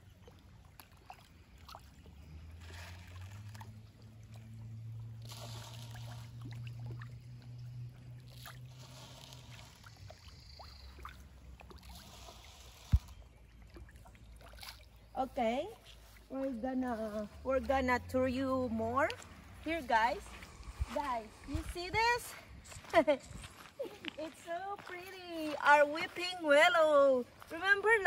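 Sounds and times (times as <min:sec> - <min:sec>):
fish splashing at water surface: 0:00.0 - 0:15.2
faint low engine drone: 0:00.0 - 0:27.8.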